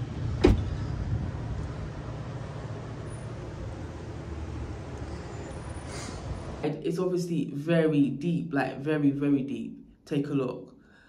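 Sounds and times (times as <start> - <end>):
low street rumble: 0.0 - 7.0
car door shutting: 0.3 - 0.9.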